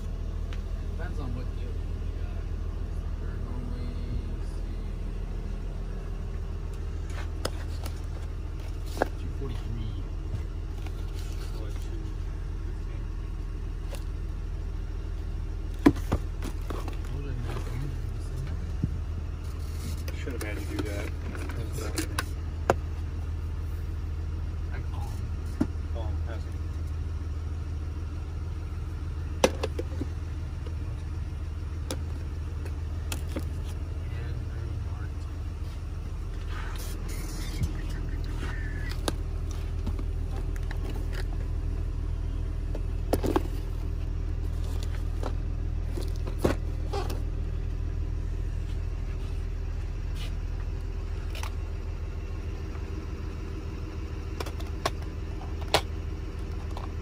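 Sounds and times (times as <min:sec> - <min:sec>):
low machine hum: 0:00.0 - 0:57.0.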